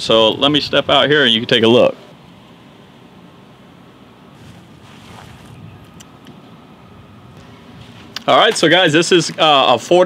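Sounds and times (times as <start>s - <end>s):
wind noise on microphone: 4.4s - 8.2s.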